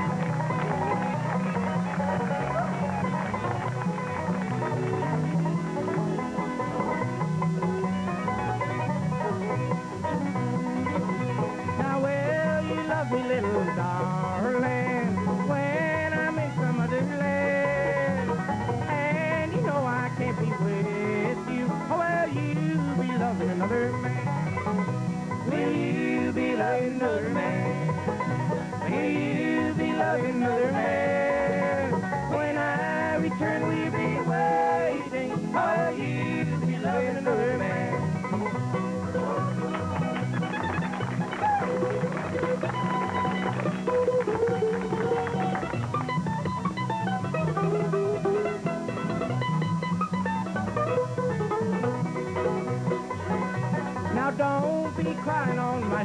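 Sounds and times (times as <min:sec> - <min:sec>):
bluegrass band playing: 0:00.0 - 0:56.0
fast banjo picking: 0:00.0 - 0:56.0.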